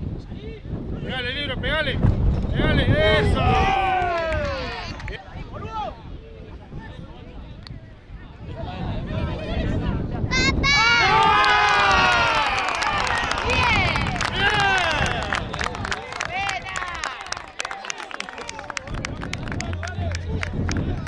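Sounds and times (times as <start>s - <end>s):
spectators shouting and cheering: 2.9s - 5.8s, 10.3s - 21.0s.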